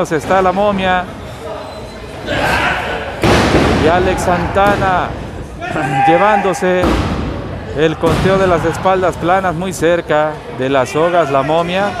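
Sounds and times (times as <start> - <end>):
wrestlers slamming onto ring: 3.2 - 4.0.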